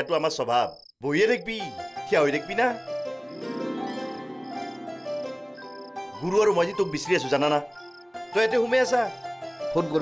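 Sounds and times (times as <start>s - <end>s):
man speaking: 0.0s - 2.8s, 6.1s - 7.7s
cricket chirping: 0.0s - 10.0s.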